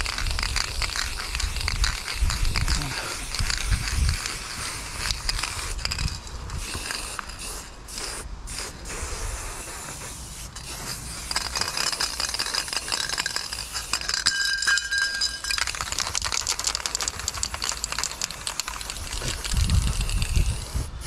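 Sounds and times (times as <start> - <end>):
spray can hissing: 0.0 - 21.0
spray can mixing ball rattling: 0.0 - 21.0.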